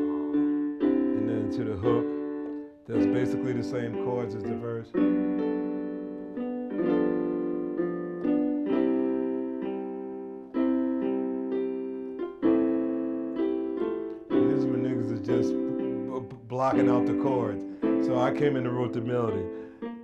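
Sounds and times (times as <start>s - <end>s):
keyboard piano chords: 0.0s - 20.0s.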